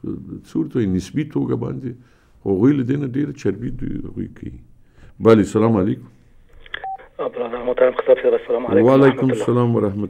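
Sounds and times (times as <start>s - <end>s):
telephone line beep: 6.8s - 7.1s
person talking over phone line: 6.8s - 9.9s.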